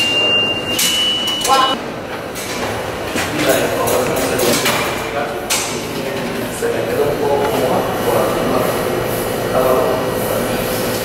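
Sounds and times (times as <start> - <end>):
subway train whine: 0.0 - 3.2, 5.2 - 11.0.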